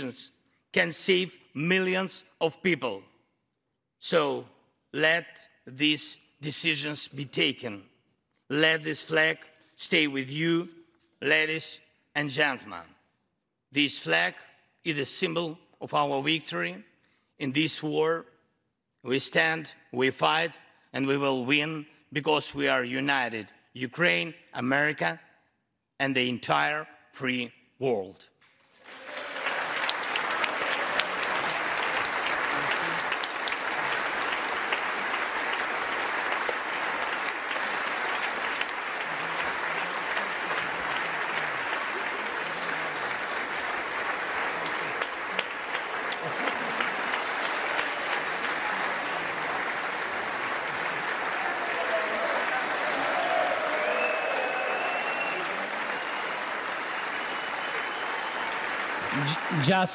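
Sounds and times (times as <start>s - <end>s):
large audience applause: 28.6s - 59.9s.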